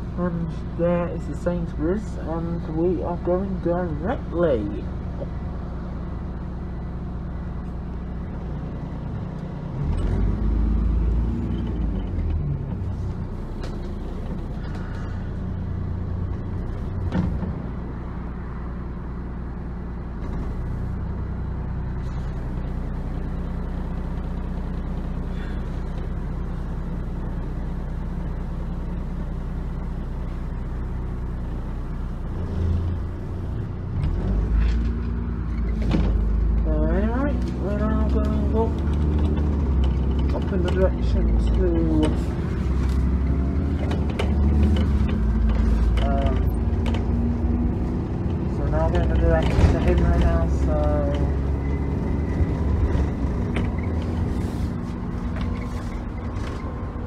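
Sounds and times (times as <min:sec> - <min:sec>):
bus engine drone: 0:00.0 - 0:57.0
road noise: 0:00.0 - 0:57.0.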